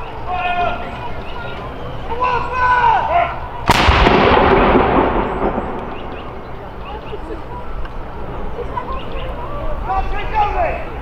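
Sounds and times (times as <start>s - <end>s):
artillery gun firing: 3.7s - 6.6s.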